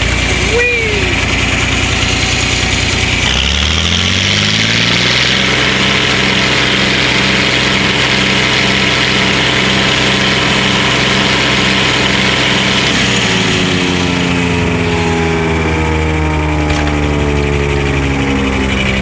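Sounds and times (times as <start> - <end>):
tractor diesel engine: 0.0 - 19.0.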